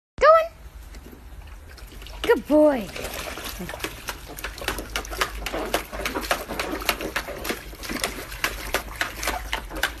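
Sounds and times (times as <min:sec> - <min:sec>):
dog splashing in water: 0:01.5 - 0:10.0.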